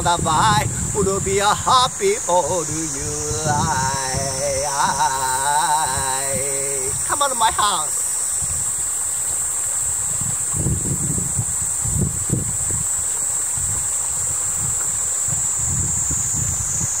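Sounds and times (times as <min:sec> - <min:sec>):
steady high-pitched hiss: 0:00.0 - 0:17.0
stream running over stones: 0:00.0 - 0:17.0
wind buffeting microphone: 0:00.0 - 0:17.0.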